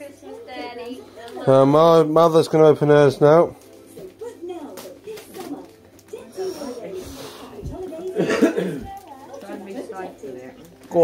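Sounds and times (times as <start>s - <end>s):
low indistinct voices: 0.0s - 11.0s
wrapping paper rustling and tearing: 2.2s - 8.2s
person coughing: 8.2s - 8.9s.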